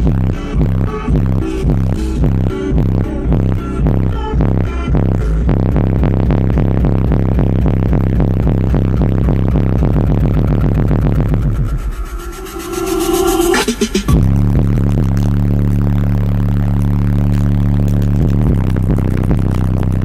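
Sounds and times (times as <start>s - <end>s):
bass-heavy music through subwoofers: 0.0s - 20.0s.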